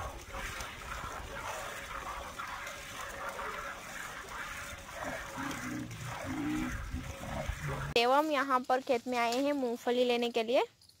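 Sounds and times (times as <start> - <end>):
milk squirting into metal bucket: 0.0 - 8.0.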